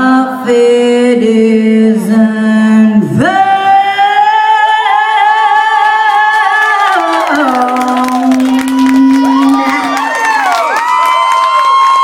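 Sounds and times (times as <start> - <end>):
audience cheering and whooping: 6.4 - 12.0.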